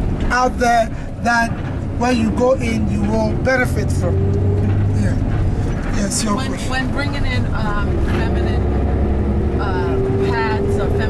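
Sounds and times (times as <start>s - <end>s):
bus rumble from inside: 0.0s - 11.0s.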